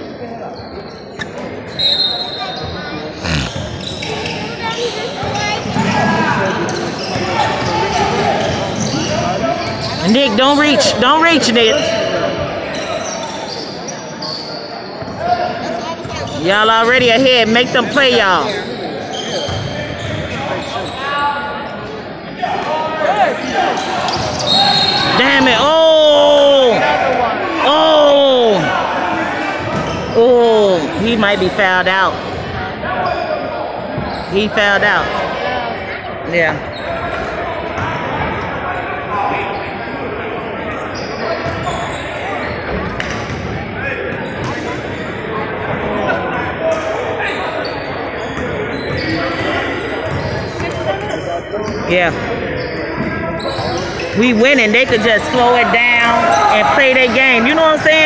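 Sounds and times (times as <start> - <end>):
indistinct voices in echoing hall: 0.0 - 58.0.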